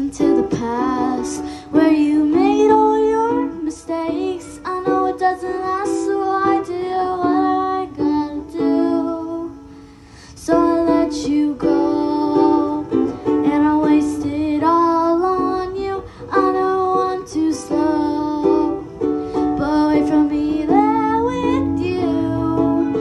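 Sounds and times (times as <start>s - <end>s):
ukulele strumming: 0.0s - 9.8s, 10.4s - 23.0s
girl singing: 0.0s - 23.0s.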